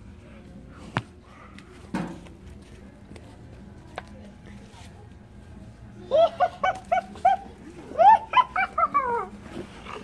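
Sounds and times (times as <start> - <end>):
child yelping: 6.1 - 9.3.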